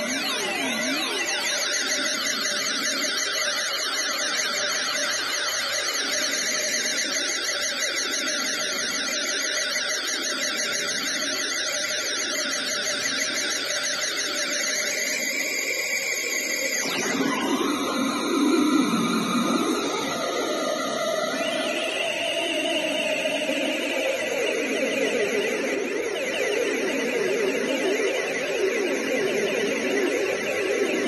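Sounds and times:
synthesizer noise drone with pitch sweeps: 0.0 - 31.0.

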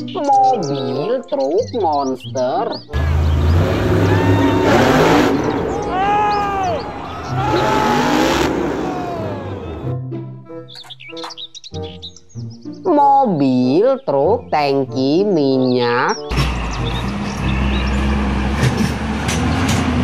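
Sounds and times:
truck engine revving loudly: 3.0 - 10.0, 16.3 - 20.0.

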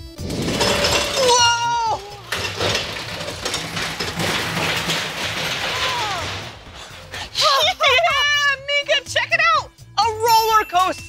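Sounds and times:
roller coaster rattling on track: 0.3 - 7.5.

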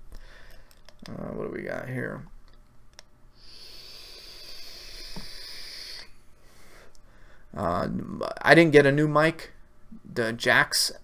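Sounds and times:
air hiss drawn through vape pen: 3.4 - 6.1.

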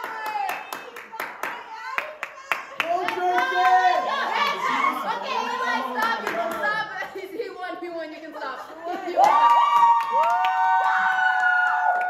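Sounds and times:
hands clapping rhythmically: 0.0 - 4.6, 5.9 - 6.8, 9.1 - 12.0.

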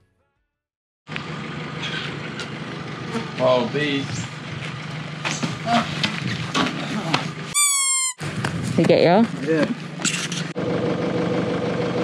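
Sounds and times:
low outdoor hum and rumble: 1.1 - 12.0.

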